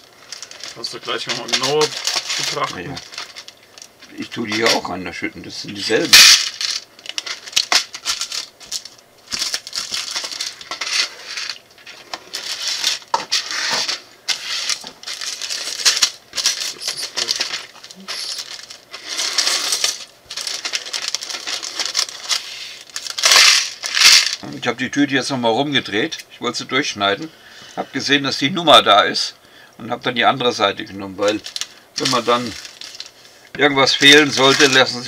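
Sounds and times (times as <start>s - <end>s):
plastic bags crinkling: 0.0s - 24.6s, 30.8s - 35.0s
plastic bricks clattering: 0.3s - 4.8s, 6.0s - 24.4s, 31.2s - 33.1s, 33.8s - 35.0s.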